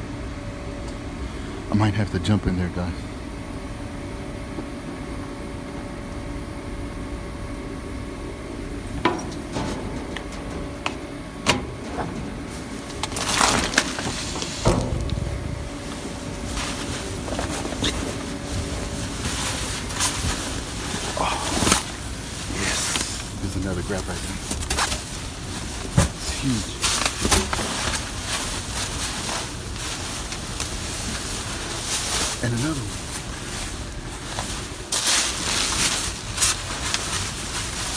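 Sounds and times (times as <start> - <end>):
steady background hum: 0.0 - 37.9
knocks and thumps in dumpster: 8.9 - 17.7
plastic bags rustling: 11.7 - 37.9.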